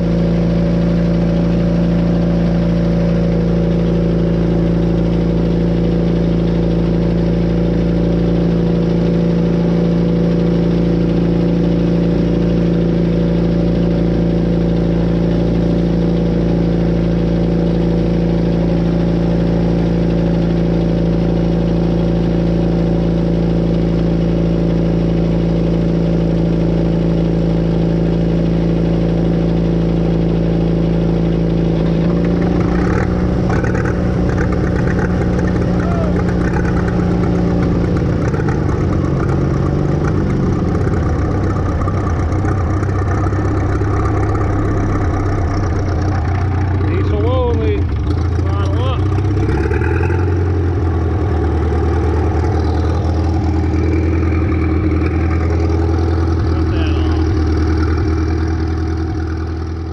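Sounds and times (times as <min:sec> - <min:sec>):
small engine running steadily: 0:00.0 - 0:59.9.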